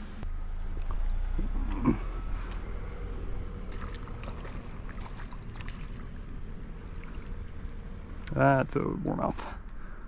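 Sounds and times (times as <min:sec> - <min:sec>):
steady low rumble: 0:00.0 - 0:10.0
fish splashing at water surface: 0:03.6 - 0:06.2.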